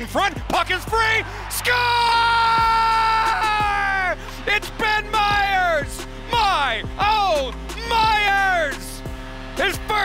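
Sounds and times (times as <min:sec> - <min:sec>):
announcer shouting: 0:00.0 - 0:09.0, 0:09.6 - 0:10.0
background music: 0:00.0 - 0:10.0.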